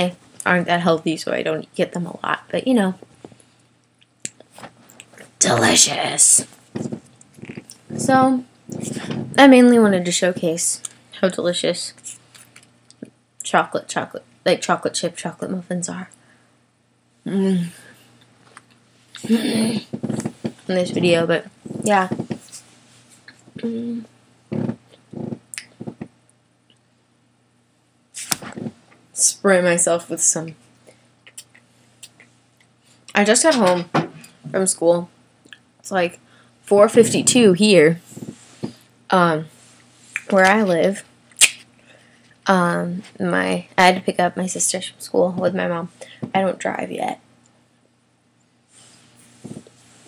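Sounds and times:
quiet chewing: 0:06.7 - 0:07.9
woman humming mm: 0:19.2 - 0:20.4, 0:23.6 - 0:26.1
mouth clicks: 0:41.3 - 0:41.6.

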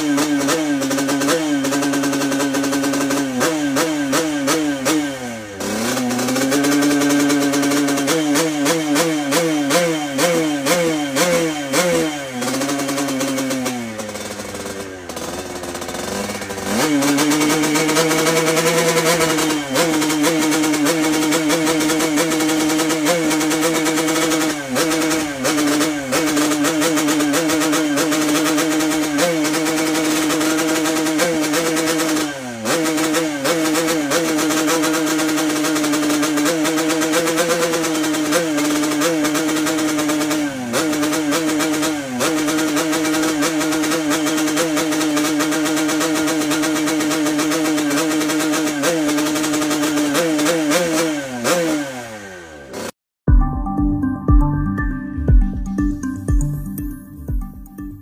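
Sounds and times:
motorcycle engine revving hard: 0:00.0 - 0:53.0.

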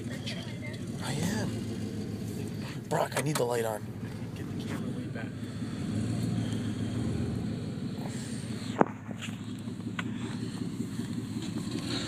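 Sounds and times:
truck engine rumbling: 0:00.0 - 0:12.0.

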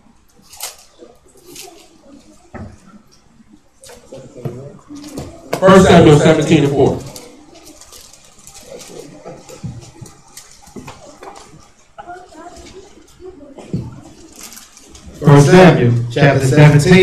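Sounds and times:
faint voices murmuring: 0:00.0 - 0:17.0
pages rustling: 0:07.0 - 0:11.7, 0:14.2 - 0:15.1.

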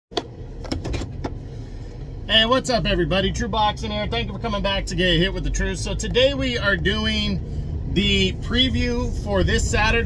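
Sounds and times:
vehicle low rumble: 0:00.1 - 0:10.0.

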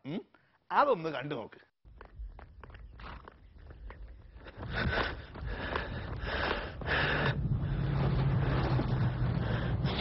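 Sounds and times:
man breathing hard: 0:04.3 - 0:10.0
car engine humming: 0:06.6 - 0:10.0.

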